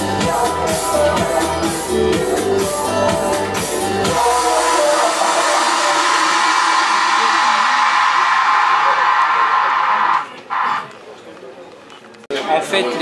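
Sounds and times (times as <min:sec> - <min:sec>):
audience applauding: 0:04.2 - 0:10.3
whoops: 0:04.4 - 0:10.2.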